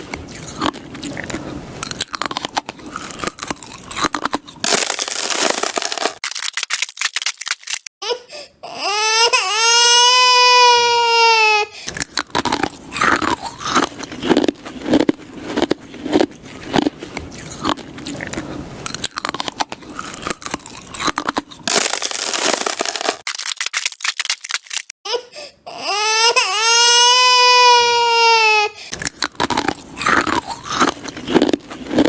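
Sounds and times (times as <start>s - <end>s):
ice cubes being crunched: 1.8s - 7.9s, 11.9s - 24.9s, 28.9s - 32.0s
long high wailing cry: 8.6s - 11.8s, 25.1s - 28.8s.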